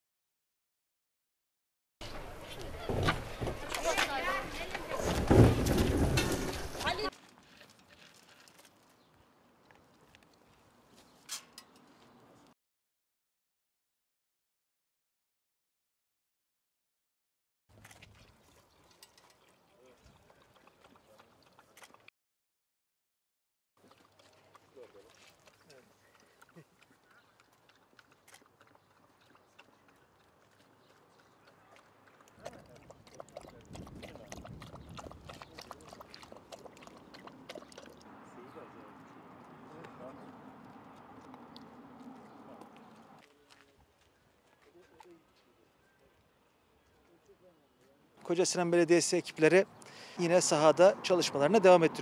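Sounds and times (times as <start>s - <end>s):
dog lapping water: 17.7s - 22.1s, 23.8s - 38.2s, 38.9s - 43.2s.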